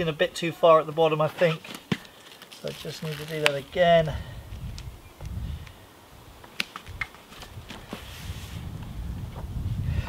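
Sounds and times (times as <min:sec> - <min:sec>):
vinyl peeling rustle: 0:01.3 - 0:04.0, 0:06.4 - 0:08.7
cloth crinkling: 0:01.4 - 0:03.9.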